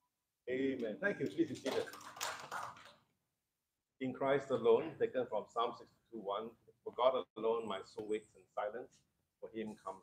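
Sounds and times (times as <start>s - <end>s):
person speaking: 0.5s - 2.0s.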